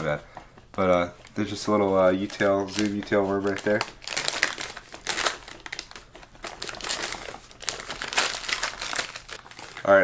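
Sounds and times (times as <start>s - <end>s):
plastic bag crinkling: 0.8s - 10.0s.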